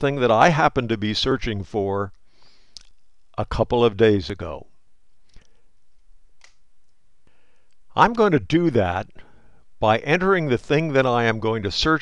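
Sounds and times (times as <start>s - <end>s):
person speaking: 0.0s - 5.4s, 7.8s - 12.0s
intake of breath: 2.2s - 2.8s, 7.2s - 7.8s, 9.2s - 9.7s.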